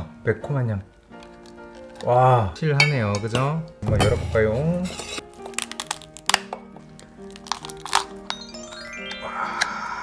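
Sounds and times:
soft background music: 0.0s - 10.0s
crab shell cracking: 1.1s - 2.2s, 5.2s - 8.4s.

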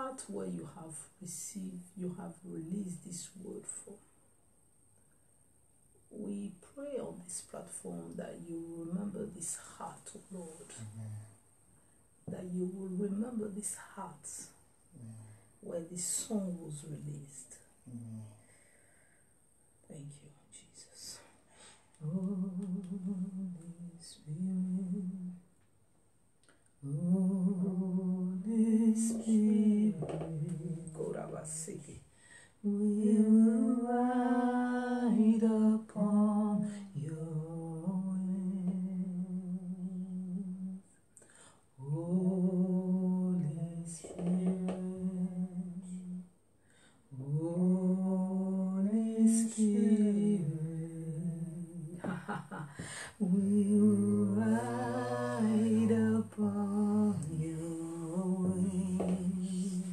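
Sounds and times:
woman humming: 22.0s - 25.4s, 26.8s - 31.7s, 32.6s - 40.8s, 41.8s - 46.3s, 49.4s - 59.9s.

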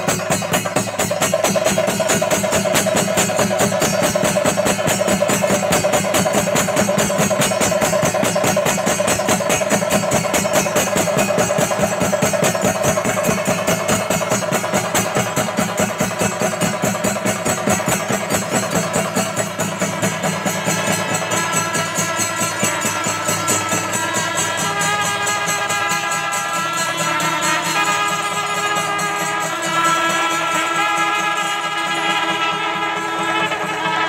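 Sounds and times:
cymbals clashing: 0.0s - 34.0s
drums beaten fast: 0.0s - 34.0s
horns: 0.0s - 34.0s
reed pipe melody: 8.7s - 34.0s.

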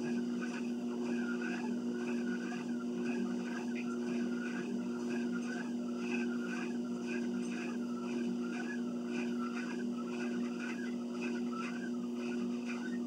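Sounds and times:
treadmill motor hum: 0.0s - 13.0s
walking on treadmill belt: 0.0s - 13.0s
wavering high whine: 0.0s - 13.0s.

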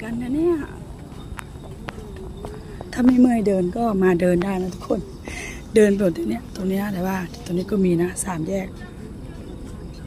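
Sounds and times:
faint crowd chatter: 0.0s - 10.0s
footsteps tapping on walkway: 0.6s - 5.0s.

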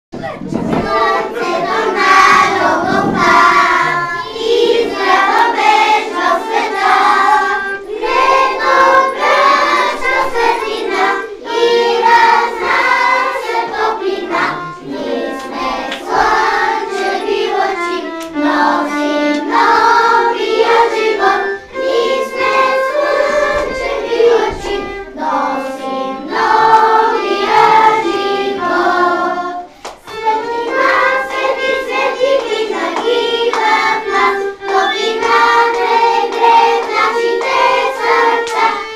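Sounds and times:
children singing together: 0.2s - 38.9s
violin playing: 0.2s - 38.9s.

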